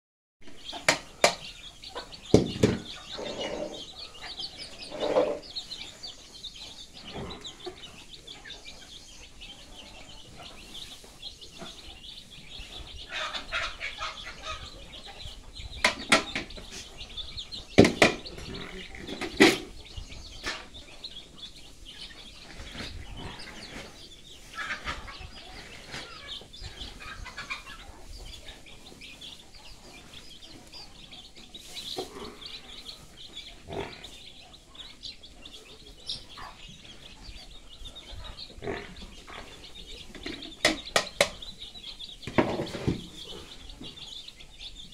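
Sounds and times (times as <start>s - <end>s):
chicks cheeping: 0.4s - 44.9s
loud sharp knocks: 2.3s - 3.0s, 17.8s - 18.3s.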